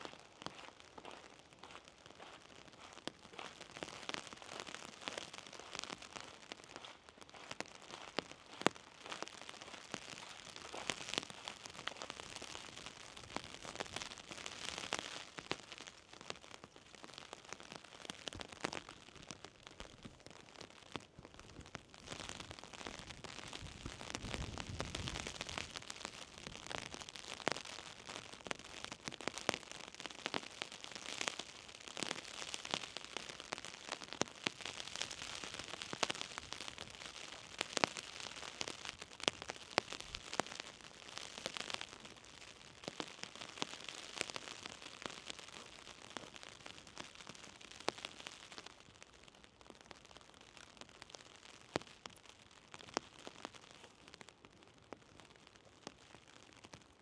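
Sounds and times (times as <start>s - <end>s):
light rain falling: 0.0s - 48.8s.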